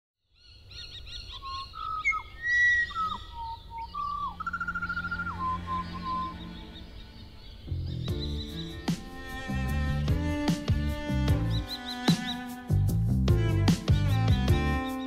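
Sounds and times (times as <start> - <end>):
birds chirping and trilling: 0.2 - 15.0
music: 4.3 - 15.0.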